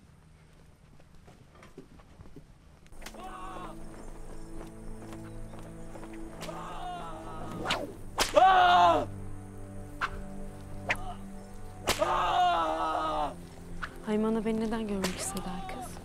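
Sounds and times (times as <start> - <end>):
whip lashes cracking: 3.0 - 3.3, 6.4 - 6.8, 7.4 - 8.6, 10.0 - 11.1, 11.8 - 12.3, 15.0 - 15.4
low sustained musical score: 3.0 - 16.0.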